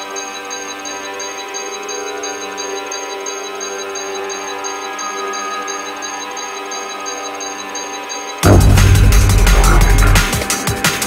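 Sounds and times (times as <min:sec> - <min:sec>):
sustained synthesizer chords: 0:08.4 - 0:10.8.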